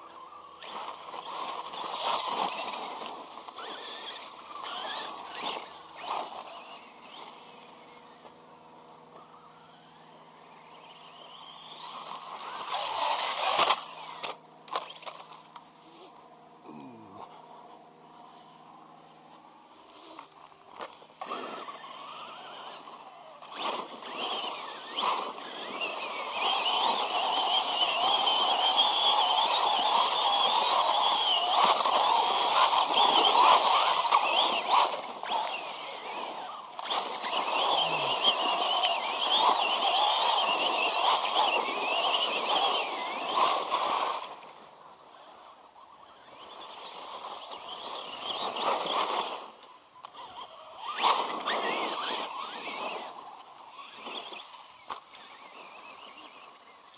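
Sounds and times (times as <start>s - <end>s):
electric motor whining: 0.0s - 56.9s
tyres on dirt and gravel: 0.0s - 56.9s.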